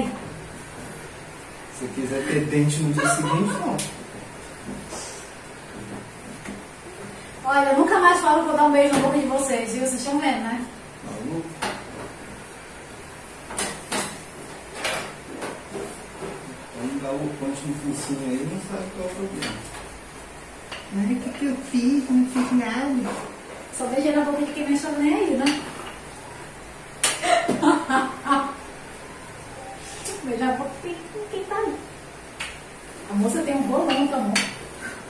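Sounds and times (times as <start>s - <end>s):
woman laughing: 2.2s - 3.9s, 27.2s - 28.6s.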